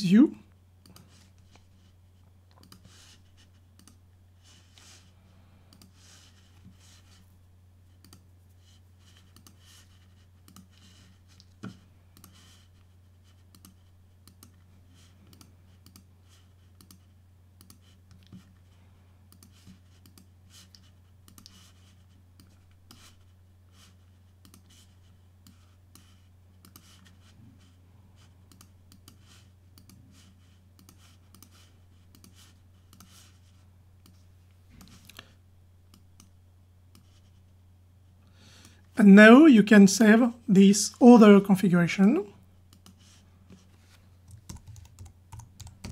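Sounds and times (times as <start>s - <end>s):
steady low hum: 0.0s - 45.9s
computer mouse clicks: 2.5s - 2.9s, 3.8s - 4.0s, 5.7s - 6.0s, 8.0s - 8.3s, 9.2s - 9.6s, 10.4s - 10.8s, 12.2s - 12.4s, 13.5s - 14.6s, 15.3s - 16.1s, 16.7s - 17.0s, 17.6s - 18.4s, 19.3s - 21.6s, 24.4s - 24.7s, 25.4s - 27.0s, 28.5s - 29.2s, 29.8s - 30.0s, 30.8s - 33.2s, 35.9s - 37.1s, 42.7s - 43.0s.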